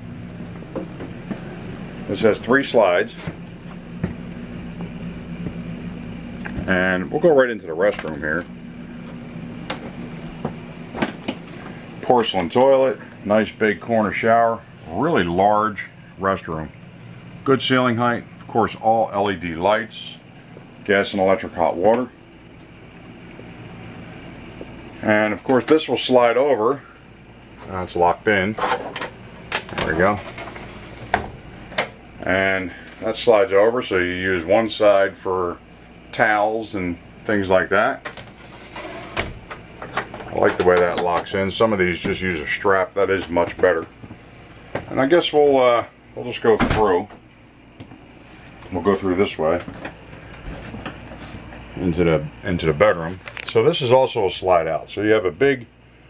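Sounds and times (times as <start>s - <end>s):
low machine hum: 0.0s - 56.0s.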